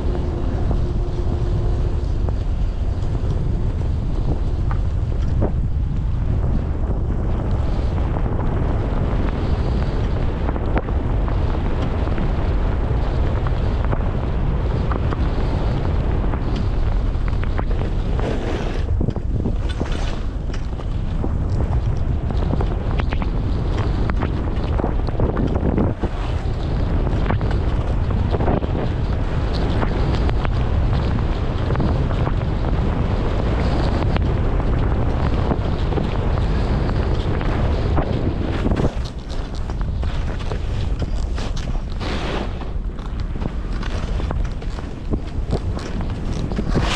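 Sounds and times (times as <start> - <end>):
skis sliding on snow: 0.0 - 46.9
wind buffeting microphone: 0.0 - 46.9.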